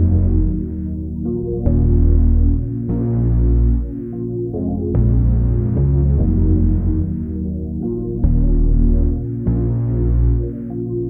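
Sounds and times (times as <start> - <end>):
deep bass: 0.0 - 11.0
synth pad chords: 0.0 - 11.0.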